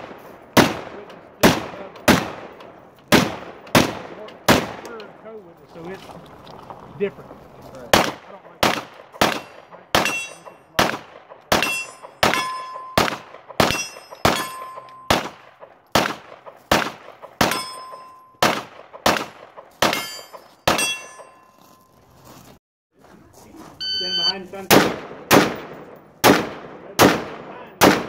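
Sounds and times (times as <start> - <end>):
gunshots: 0.0 - 5.3, 7.8 - 21.4, 24.6 - 28.0
steel targets ringing: 9.2 - 10.8, 11.6 - 15.2, 17.4 - 18.4, 19.9 - 21.8.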